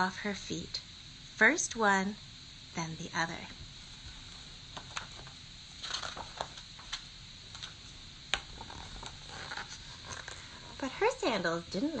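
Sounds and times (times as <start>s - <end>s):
paper rustling: 4.9s - 7.0s.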